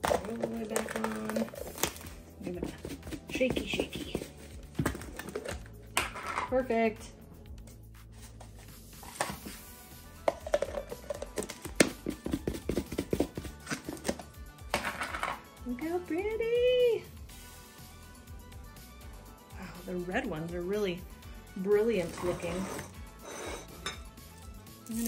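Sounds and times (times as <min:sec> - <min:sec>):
sprinkles rattling in plastic tub: 0:00.0 - 0:02.0.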